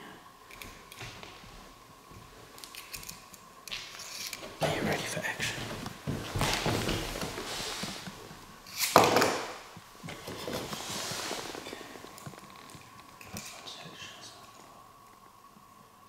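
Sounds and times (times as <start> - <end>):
handling and shuffling noise: 0.8 - 14.8.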